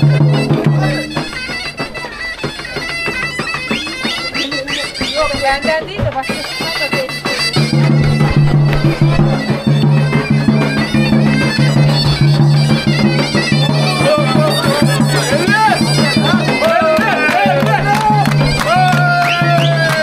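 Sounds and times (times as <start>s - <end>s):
bagpipe fast melody with drone: 0.0s - 20.0s
crowd chatter: 0.0s - 20.0s.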